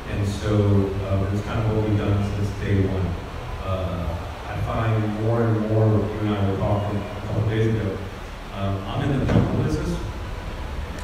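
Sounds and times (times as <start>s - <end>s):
man talking over a pa: 0.0s - 10.0s.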